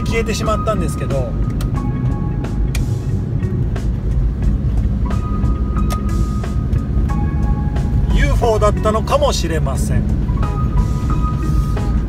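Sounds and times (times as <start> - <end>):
road and engine rumble: 0.0 - 12.0
soft background music: 0.0 - 12.0.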